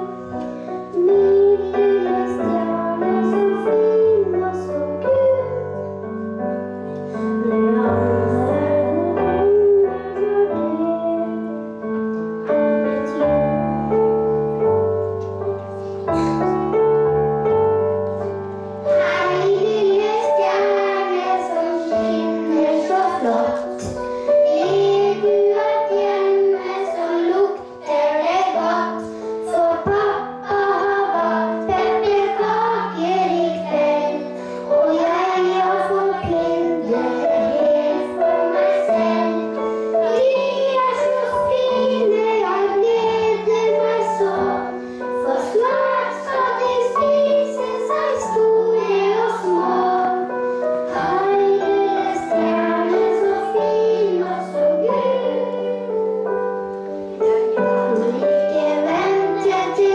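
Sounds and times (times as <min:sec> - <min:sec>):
piano accompaniment: 0:00.0 - 0:59.9
children singing along: 0:00.9 - 0:05.6, 0:18.8 - 0:59.9
boy singing into microphone: 0:00.9 - 0:05.7, 0:07.4 - 0:11.4, 0:19.0 - 0:39.4, 0:40.0 - 0:50.3, 0:57.8 - 0:59.9.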